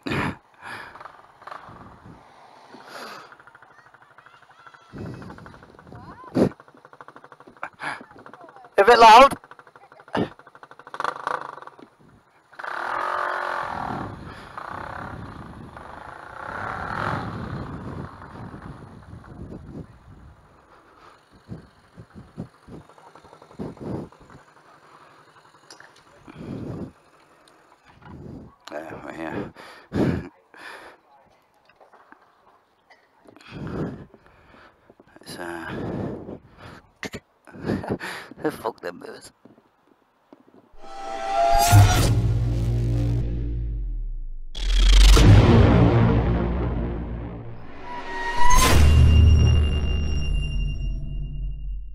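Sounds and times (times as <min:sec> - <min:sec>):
people laughing: 0:03.7 - 0:04.9
bursts of speech: 0:07.8 - 0:10.6
scooter engine revving: 0:09.4 - 0:11.8, 0:12.5 - 0:18.9.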